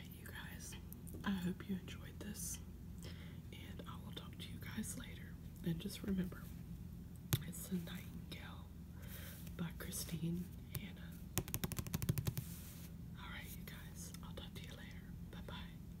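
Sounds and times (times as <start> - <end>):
soft whispering: 0.0 - 2.7, 3.5 - 6.6, 7.4 - 8.8, 9.4 - 11.2, 13.2 - 15.9
fingernail taps on a book cover: 11.4 - 12.5.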